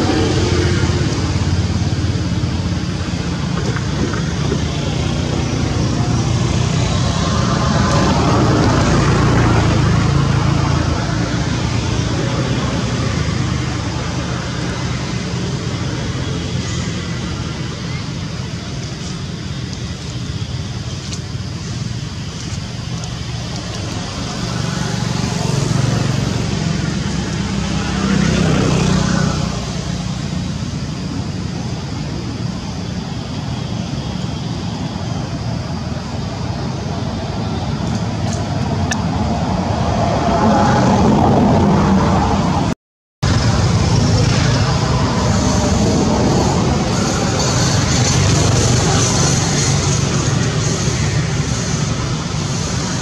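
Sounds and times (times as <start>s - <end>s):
traffic from passing vehicles: 0.0s - 53.0s.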